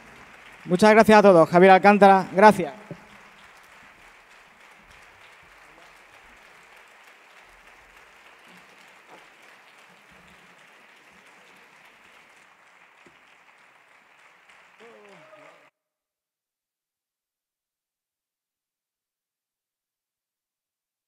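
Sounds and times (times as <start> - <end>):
audience applauding: 0.0 - 15.7.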